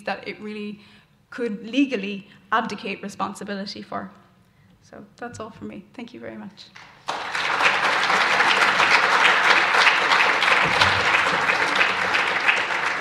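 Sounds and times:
audience applauding: 0:06.8 - 0:13.0.

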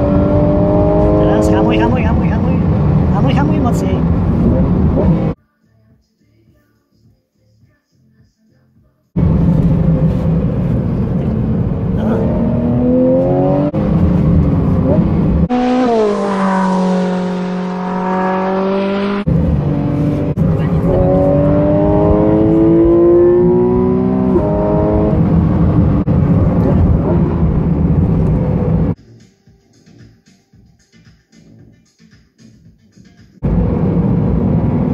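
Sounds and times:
racing car engine accelerating: 0:00.0 - 0:05.4, 0:09.2 - 0:29.0, 0:33.4 - 0:34.9.

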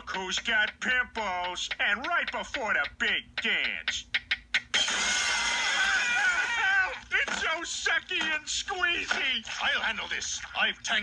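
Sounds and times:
cartoon characters screaming: 0:05.4 - 0:07.0.

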